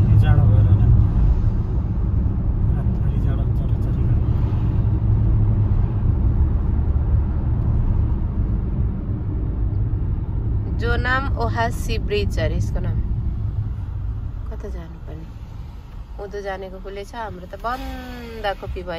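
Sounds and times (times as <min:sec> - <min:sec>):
car engine rumble: 0:00.0 - 0:18.9
road noise inside car: 0:00.0 - 0:18.9.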